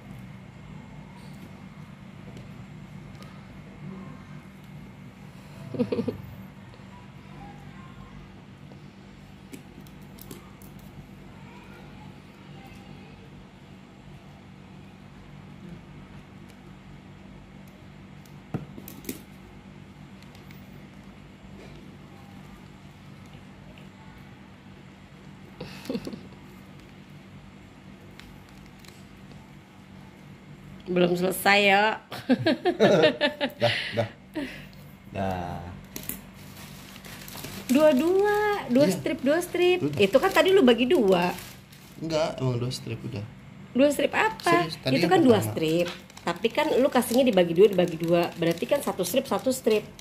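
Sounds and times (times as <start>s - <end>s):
steady low hum: 0.0s - 50.0s
human laughter: 5.6s - 6.3s, 25.6s - 26.4s, 32.1s - 34.6s.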